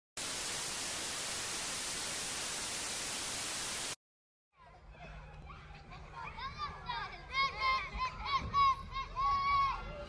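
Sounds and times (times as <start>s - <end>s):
white noise static hiss: 0.2s - 4.0s.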